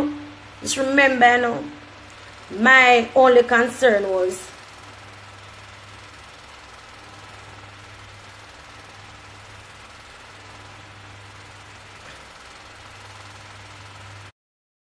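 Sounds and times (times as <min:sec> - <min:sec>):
steady low hum: 0:00.0 - 0:14.3.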